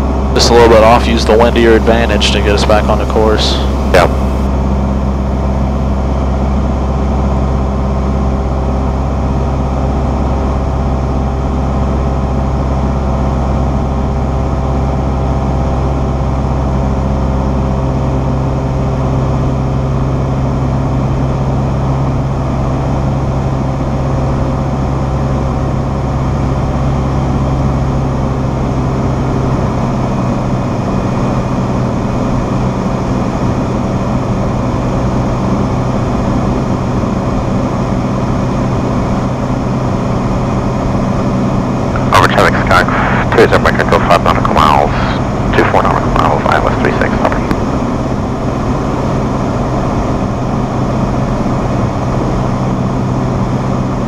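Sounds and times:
aircraft engine droning in cabin: 0:00.0 - 0:54.0.

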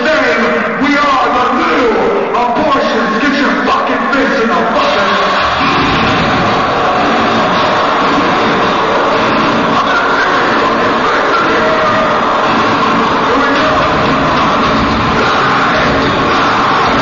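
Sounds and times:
drums: 0:00.2 - 0:17.0
distorted electric guitars: 0:04.5 - 0:17.0.

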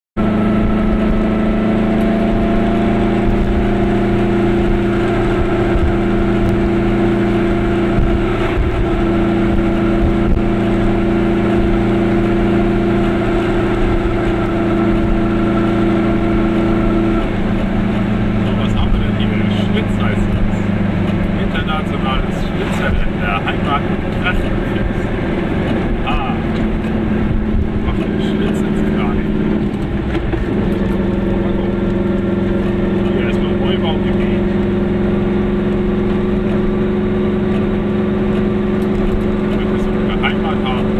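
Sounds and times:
car engine drone: 0:00.2 - 0:40.9
road noise: 0:00.2 - 0:40.9
person speaking: 0:26.0 - 0:26.6.

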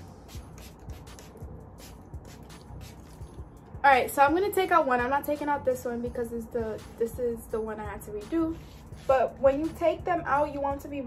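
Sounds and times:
spray bottle spritzing: 0:00.0 - 0:03.5.

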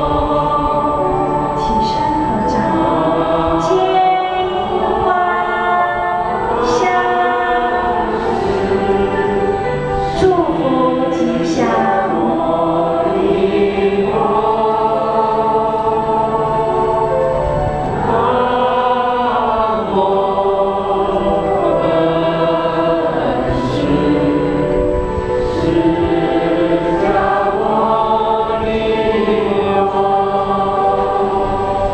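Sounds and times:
choir singing a hymn: 0:00.0 - 0:31.9.

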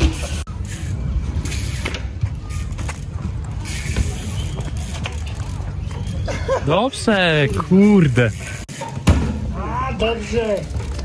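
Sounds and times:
bicycle freewheel clicking: 0:00.0 - 0:06.1.

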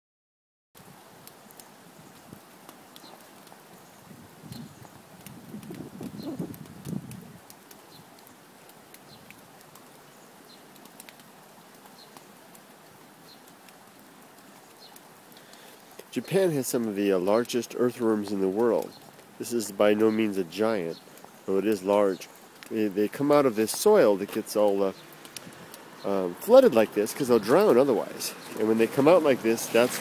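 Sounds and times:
drops ticking on umbrella: 0:00.8 - 0:17.6, 0:18.2 - 0:26.7
light rain hiss: 0:00.8 - 0:30.0.

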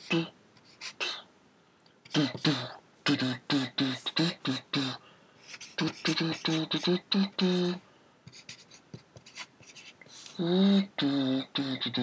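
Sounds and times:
marker scratching on paper: 0:00.0 - 0:01.1, 0:05.4 - 0:10.4.

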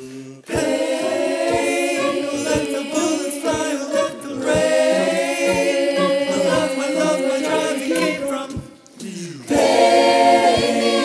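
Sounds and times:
choir singing in harmony: 0:00.0 - 0:08.8, 0:09.4 - 0:11.0
low beat: 0:00.4 - 0:08.8, 0:09.5 - 0:11.0.

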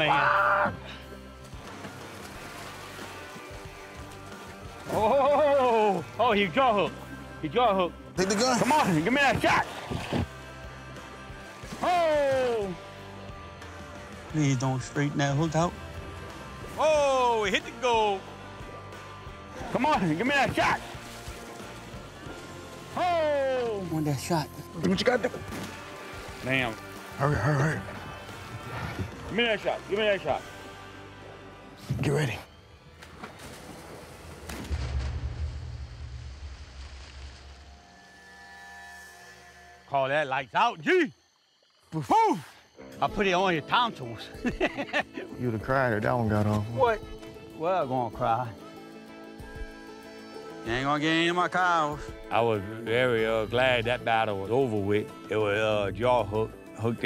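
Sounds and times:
man shouting: 0:00.0 - 0:00.8
background music sustained tones: 0:00.0 - 0:57.0
gunshot: 0:34.5 - 0:36.8
deep low boom: 0:34.6 - 0:37.4.

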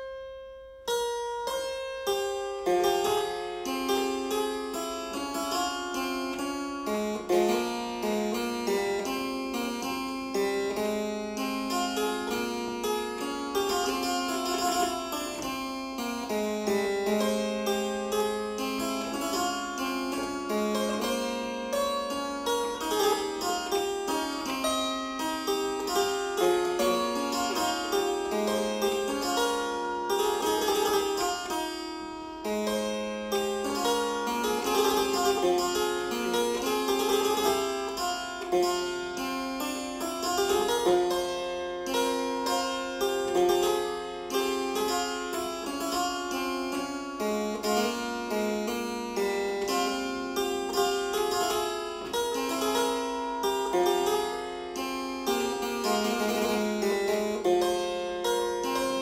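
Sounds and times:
harpsichord playing: 0:00.0 - 0:59.0.

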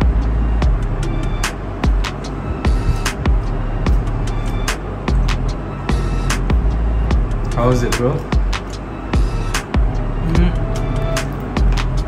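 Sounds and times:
music with heavy bass and percussion: 0:00.0 - 0:12.0.

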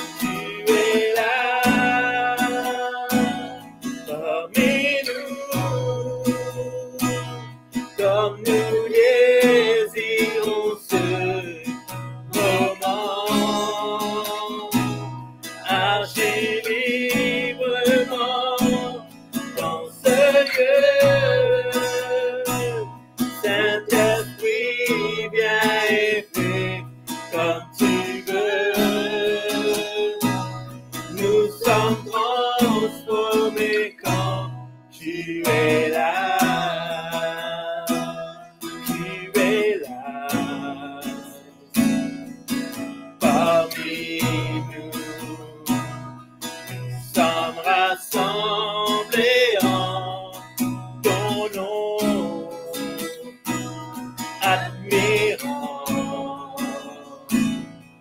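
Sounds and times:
strummed acoustic guitar: 0:00.0 - 0:58.0
man and woman singing: 0:00.2 - 0:07.4, 0:08.0 - 0:15.0, 0:15.7 - 0:19.0, 0:19.6 - 0:30.5, 0:31.1 - 0:41.4, 0:43.2 - 0:45.9, 0:46.8 - 0:53.4, 0:54.4 - 0:57.5.

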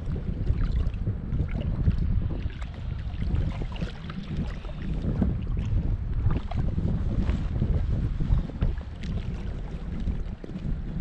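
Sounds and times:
water lapping around boat: 0:00.0 - 0:11.0
wind buffeting microphone: 0:00.0 - 0:11.0.

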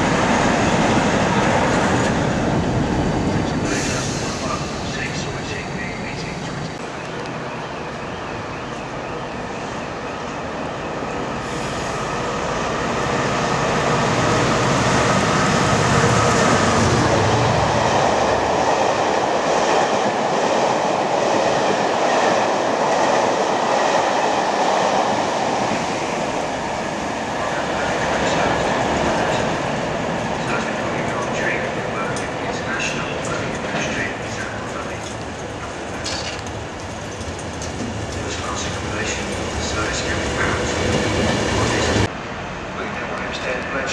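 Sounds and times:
train passing at speed: 0:00.0 - 0:43.9
train wheels clicking on rail joints: 0:30.4 - 0:42.1.

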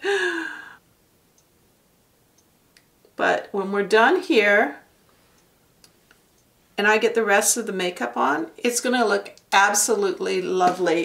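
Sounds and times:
woman sighing: 0:00.0 - 0:00.8.

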